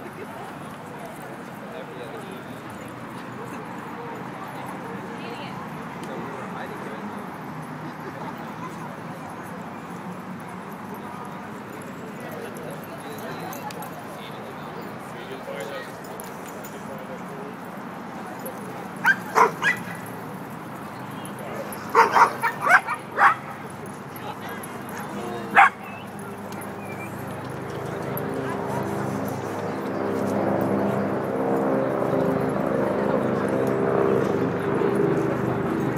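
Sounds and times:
murmur of people talking: 0:00.0 - 0:35.9
small dog yipping: 0:19.0 - 0:20.0, 0:25.5 - 0:26.1.

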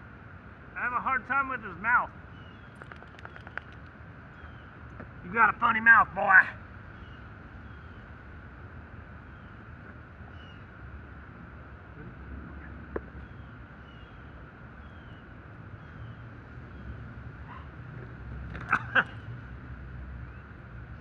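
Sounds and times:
steady low rumble: 0:00.0 - 0:21.0
faint bird chirps: 0:02.3 - 0:04.8, 0:06.9 - 0:08.1, 0:13.2 - 0:17.6
sharp snaps: 0:02.7 - 0:04.0.

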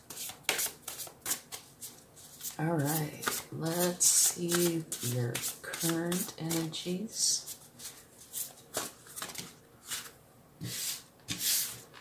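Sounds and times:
cards being shuffled: 0:00.1 - 0:06.8, 0:07.4 - 0:10.1.

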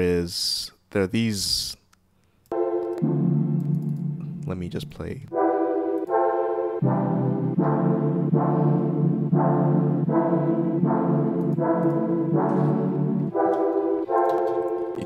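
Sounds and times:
sustained electronic chords: 0:02.5 - 0:15.0
low bass layer: 0:03.0 - 0:05.4, 0:06.8 - 0:13.5.

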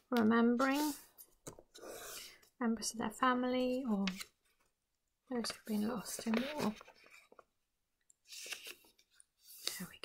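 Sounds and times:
paper rustling and being creased: 0:05.3 - 0:07.5, 0:08.2 - 0:10.0.

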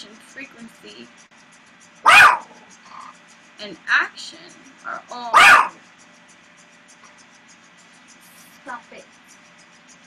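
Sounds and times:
dog barking: 0:02.0 - 0:02.6, 0:05.3 - 0:05.8.

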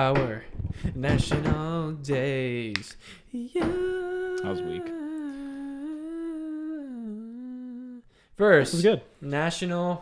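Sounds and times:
person humming: 0:03.3 - 0:08.1.

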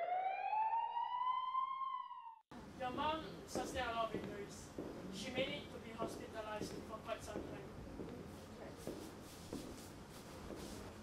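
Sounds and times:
emergency siren wailing: 0:00.0 - 0:02.4
person speaking: 0:02.6 - 0:09.4.

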